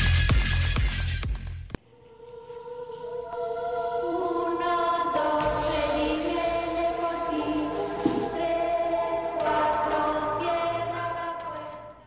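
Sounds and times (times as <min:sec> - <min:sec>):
choir singing sustained chords: 0:01.8 - 0:12.0.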